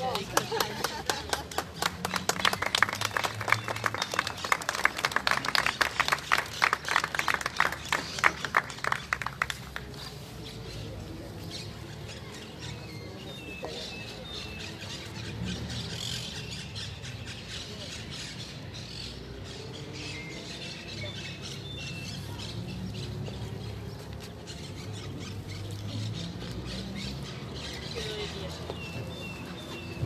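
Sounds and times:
indistinct chatter of people: 0.0 - 30.0.

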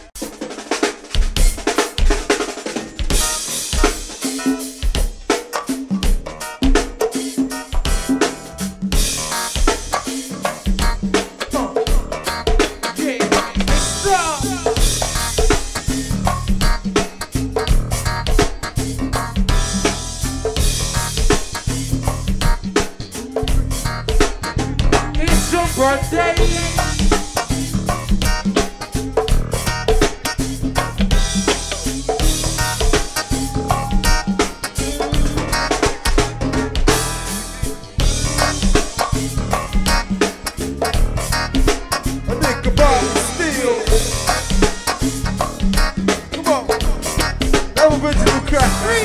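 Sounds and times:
cymbals: 11.1 - 47.9
bass part: 13.4 - 49.0.

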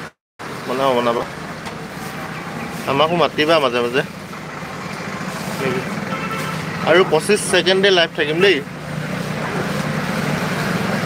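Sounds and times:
man speaking: 2.8 - 4.1, 5.5 - 6.0, 6.7 - 8.7.

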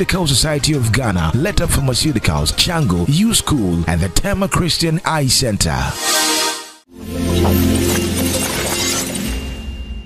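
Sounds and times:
music: 5.9 - 10.0.

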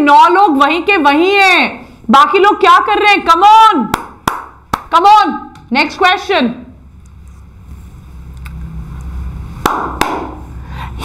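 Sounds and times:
sharp knock: 9.6 - 10.4.

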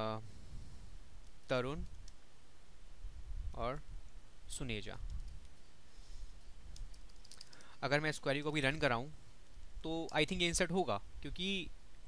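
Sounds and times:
man talking: 0.0 - 0.2, 1.5 - 1.9, 3.6 - 3.8, 4.5 - 5.0, 7.8 - 9.2, 9.8 - 11.7
keyboard typing: 6.7 - 7.8.

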